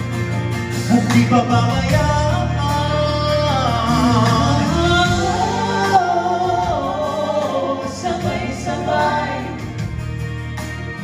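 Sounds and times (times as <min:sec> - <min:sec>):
instrumental backing track: 0:00.0 - 0:11.0
people singing in harmony: 0:03.9 - 0:10.0.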